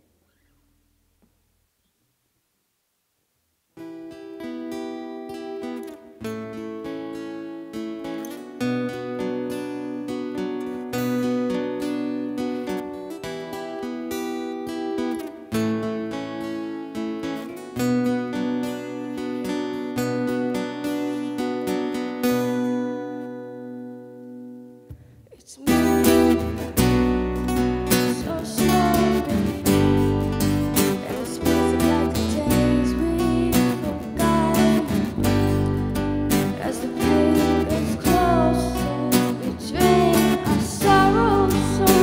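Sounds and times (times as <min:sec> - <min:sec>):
acoustic guitars strummed and picked: 0:03.8 - 0:42.0
electric bass guitar: 0:25.7 - 0:42.0.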